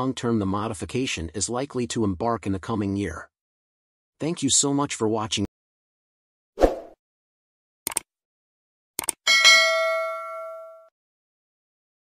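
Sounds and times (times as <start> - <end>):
mouse clicks: 7.9 - 8.1, 9.0 - 9.2
notification bell ding: 9.3 - 10.9.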